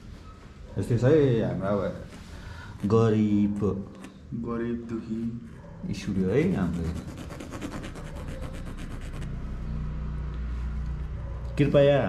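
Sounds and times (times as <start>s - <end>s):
pencil scratching on canvas: 2.8s - 3.4s, 6.3s - 9.5s.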